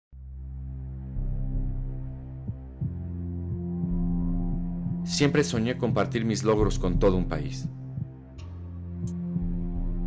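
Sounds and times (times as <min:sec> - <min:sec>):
low ambient music drone: 0:00.2 - 0:10.0
heartbeat sound effect: 0:02.4 - 0:05.1, 0:06.7 - 0:08.3.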